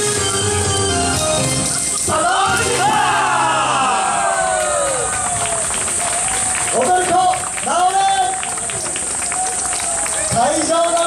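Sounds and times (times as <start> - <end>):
group of voices shouting: 2.1 - 5.6.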